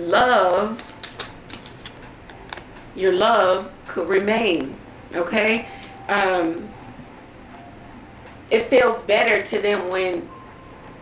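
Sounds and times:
card clicks and taps: 0.6s - 3.2s.

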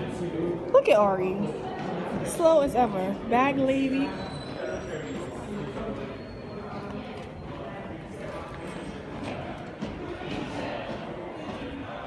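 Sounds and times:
indistinct voices: 0.0s - 12.0s
footsteps on hard stairs: 8.2s - 11.9s.

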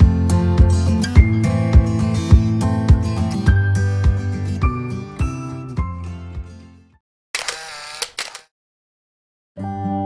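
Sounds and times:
hissy shutter-like burst: 7.4s - 8.5s
sharp clicks: 7.4s - 8.5s.

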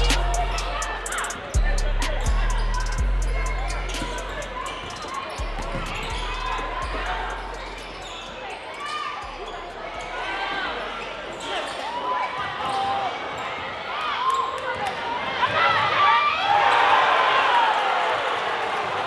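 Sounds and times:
rap music bass: 0.0s - 8.1s, 9.3s - 10.8s
crowd voices: 0.0s - 19.0s
sneaker squeaks: 2.1s - 15.0s.

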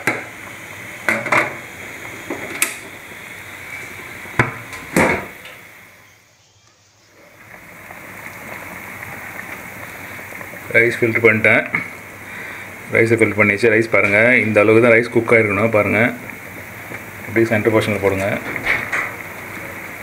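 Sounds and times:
food simmering in pot: 0.0s - 20.0s.

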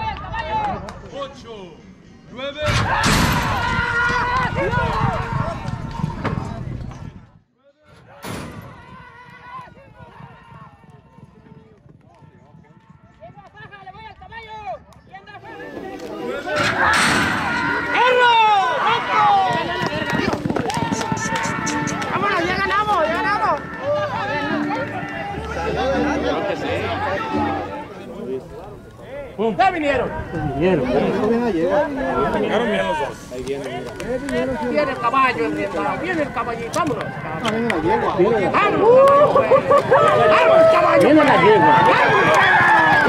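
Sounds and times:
spectators shouting: 15.4s - 28.1s, 29.1s - 43.0s.

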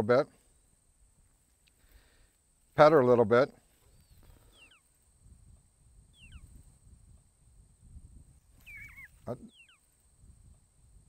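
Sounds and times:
low rumble of wind: 3.2s - 11.0s
faint high-pitched chirps: 3.8s - 7.2s, 8.2s - 10.6s.

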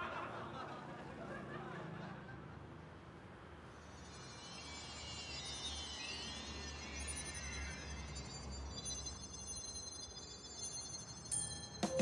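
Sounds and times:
high synthetic sparkle tones: 3.7s - 12.0s.

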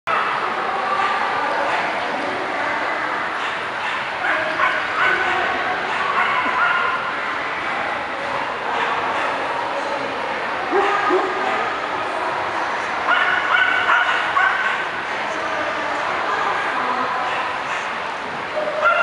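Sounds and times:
crowd chatter: 0.1s - 19.0s
dogs yipping: 3.4s - 7.1s, 13.1s - 14.8s, 18.6s - 19.0s.

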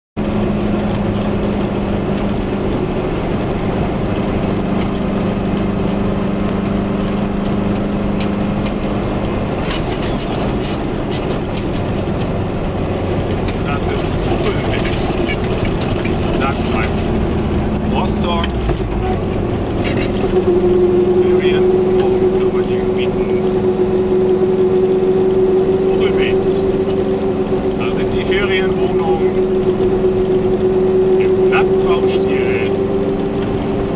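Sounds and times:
road noise: 0.2s - 33.9s.

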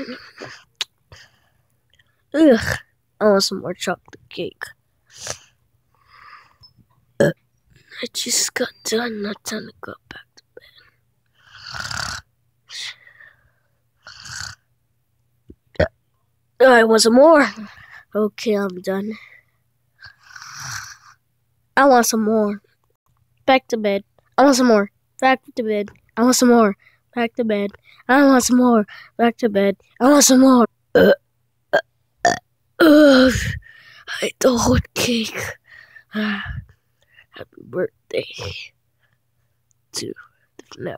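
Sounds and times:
child burping: 0.0s - 0.6s, 7.2s - 7.4s, 30.9s - 33.6s.

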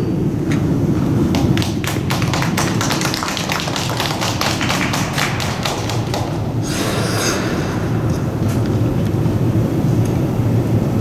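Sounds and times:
low arena rumble: 0.0s - 11.0s
scattered hand clapping: 1.3s - 6.6s.

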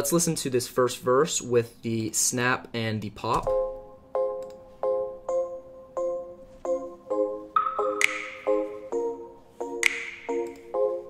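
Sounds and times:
piano chords plucked: 3.4s - 11.0s
finger snap with reverb: 7.6s - 8.7s, 9.8s - 10.7s.

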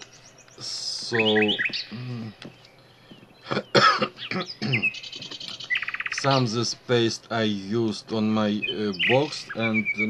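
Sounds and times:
small bird singing: 0.0s - 10.0s.

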